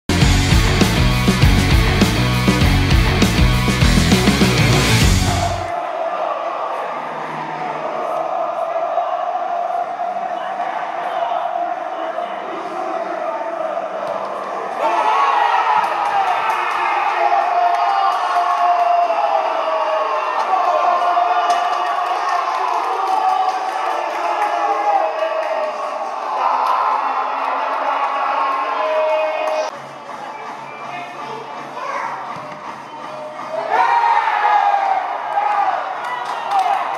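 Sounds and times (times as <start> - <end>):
players shouting and calling: 0.1 - 36.9.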